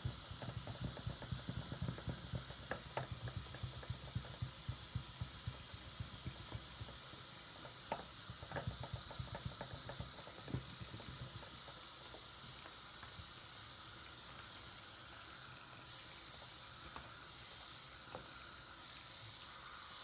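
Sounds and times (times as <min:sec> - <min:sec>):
running tap: 0:00.0 - 0:20.0
soap foam fizzing and crackling: 0:00.0 - 0:20.0.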